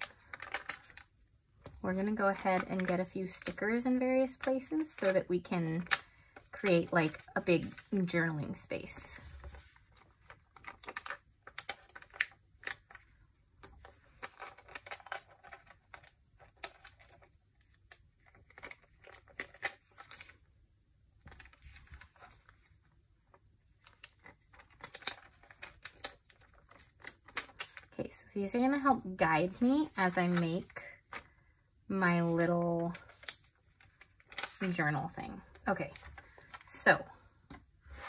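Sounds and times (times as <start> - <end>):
paper rustling: 0.0 - 3.6, 5.8 - 20.4, 21.2 - 31.4, 32.1 - 36.8.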